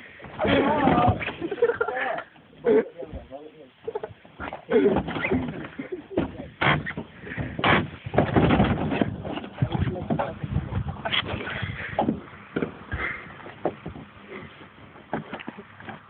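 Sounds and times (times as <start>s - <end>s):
thumping on plastic bin: 4.9s - 11.0s
muffled voices: 9.4s - 12.0s.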